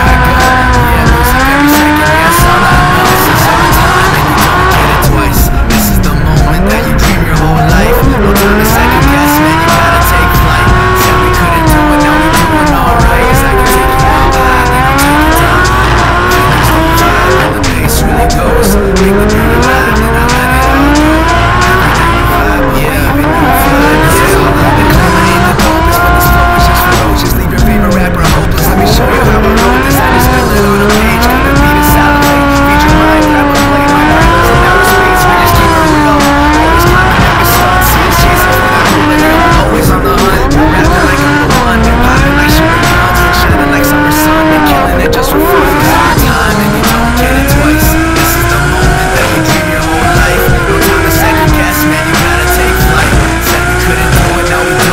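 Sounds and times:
background music: 0:00.0 - 0:54.9
car engine revving hard: 0:00.0 - 0:54.9
tyres squealing: 0:00.0 - 0:54.9.

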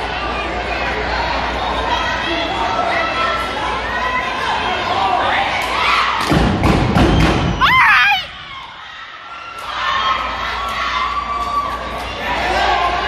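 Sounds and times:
crowd cheering and chatter: 0:00.0 - 0:13.0.

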